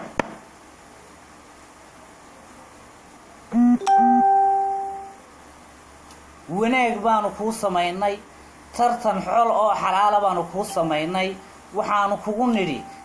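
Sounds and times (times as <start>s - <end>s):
electronic chime: 3.6s - 5.2s.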